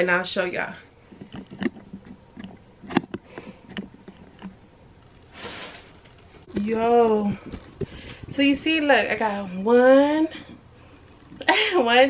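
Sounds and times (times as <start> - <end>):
rustling: 1.0 - 9.2
handling noise clicks and knocks: 1.1 - 5.2.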